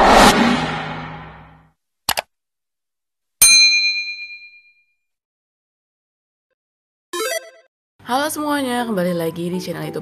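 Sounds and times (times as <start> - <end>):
bright bell ding: 3.4 - 4.8.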